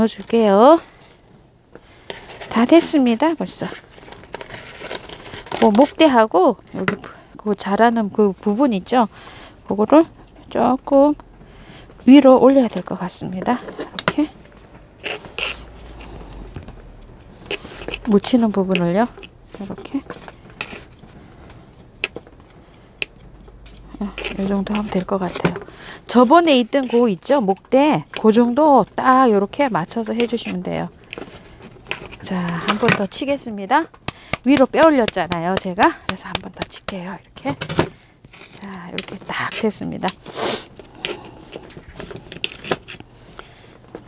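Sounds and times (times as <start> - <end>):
handling potted plant and soil: 23.5 - 33.8.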